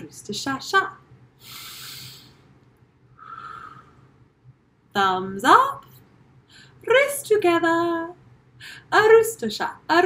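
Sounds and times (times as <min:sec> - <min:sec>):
voiceless puff of breath: 0:01.4 - 0:02.4.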